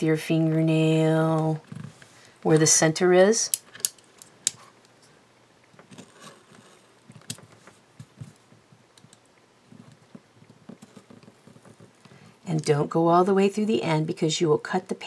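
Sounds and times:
small clicks and taps: 7.1s - 12.2s.

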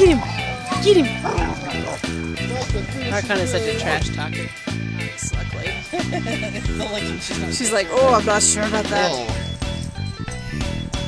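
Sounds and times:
dog barking: 0.0s - 2.1s
background music: 0.0s - 11.0s.

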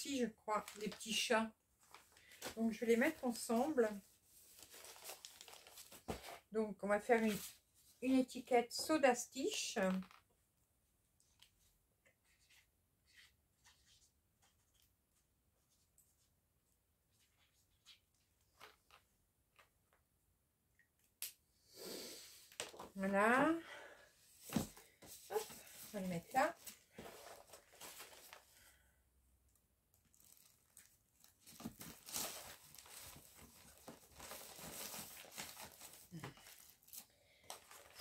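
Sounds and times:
plastic sleeves crinkling: 1.8s - 6.3s, 24.5s - 28.7s, 29.9s - 38.0s.

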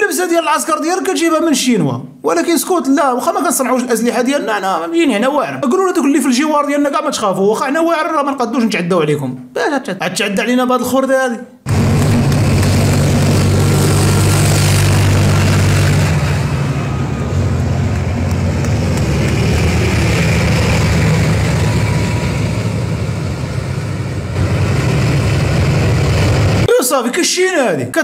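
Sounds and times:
tank engines droning: 11.7s - 26.7s.

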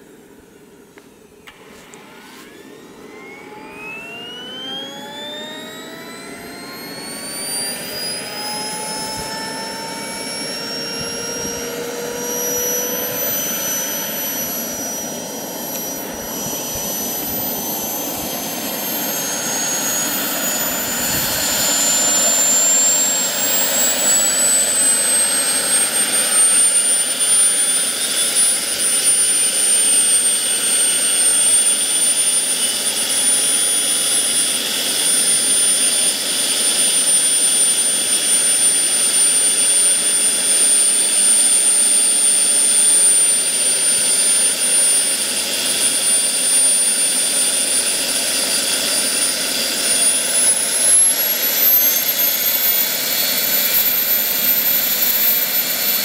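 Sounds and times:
gas turbine high whine: 0.0s - 56.0s.

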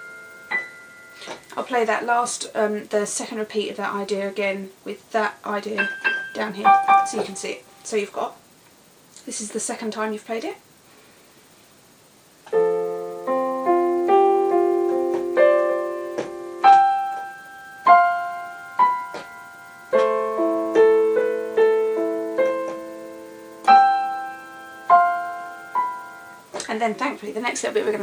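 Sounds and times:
digital piano chords and melody: 0.0s - 1.3s, 5.7s - 7.5s, 12.4s - 26.6s.

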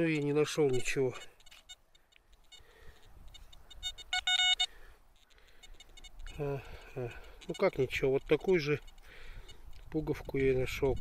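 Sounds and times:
metal detector beeps: 0.0s - 11.0s
metal detector tone: 0.0s - 11.0s.

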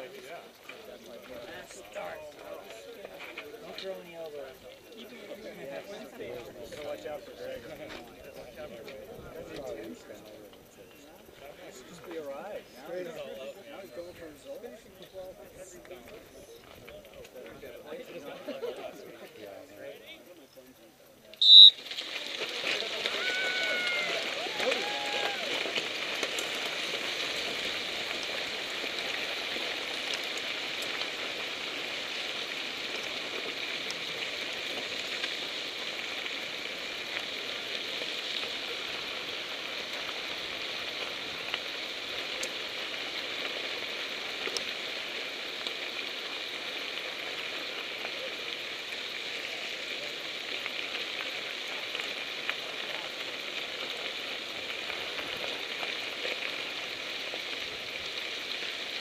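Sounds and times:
bike tyres rolling on gravel: 0.0s - 20.6s, 21.3s - 59.0s
small ticks: 25.2s - 59.0s.

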